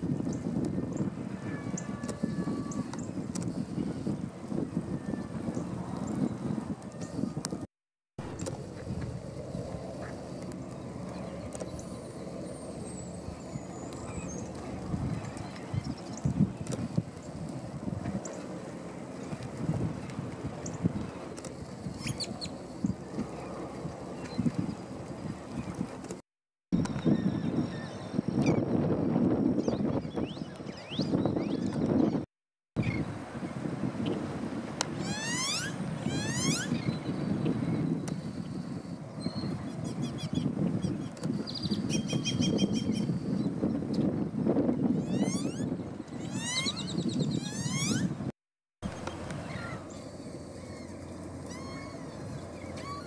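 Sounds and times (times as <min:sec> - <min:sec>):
wind noise: 0:00.0 - 0:53.0
birds calling: 0:45.0 - 0:48.1, 0:48.9 - 0:53.0.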